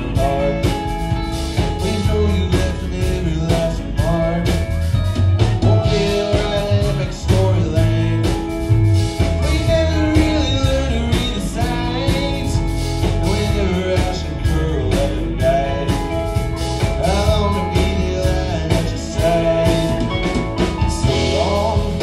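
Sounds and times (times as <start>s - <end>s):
man singing: 0.0s - 22.0s
rock band playing live: 0.0s - 22.0s.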